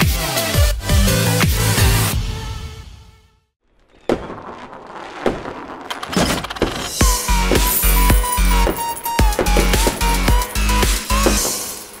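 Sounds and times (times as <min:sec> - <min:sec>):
fireworks bangs: 0:03.7 - 0:07.8, 0:08.5 - 0:12.0.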